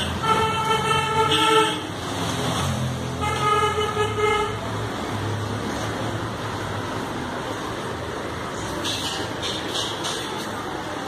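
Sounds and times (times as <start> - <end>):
road traffic engine rumble: 0.0 - 11.0.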